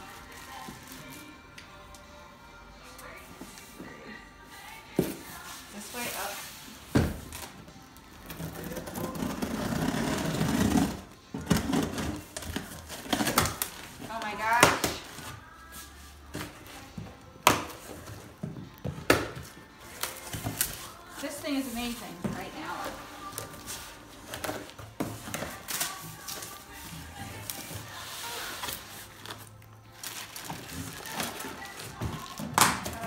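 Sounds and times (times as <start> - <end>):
music: 0.0 - 33.0.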